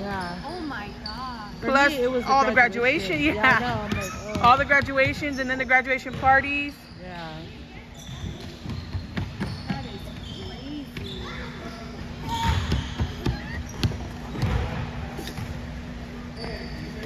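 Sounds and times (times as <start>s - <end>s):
balls bouncing on wooden floor: 3.1s - 6.8s, 8.0s - 17.0s
children's voices and chatter: 9.9s - 13.8s.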